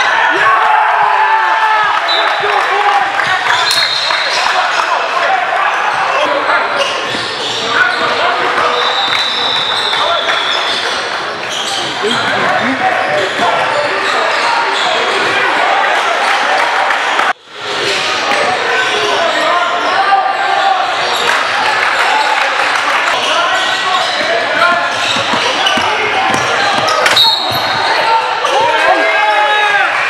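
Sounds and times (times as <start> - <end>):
echoing talk and shouts: 0.0 - 30.0
basketball bouncing on hardwood: 24.7 - 27.7.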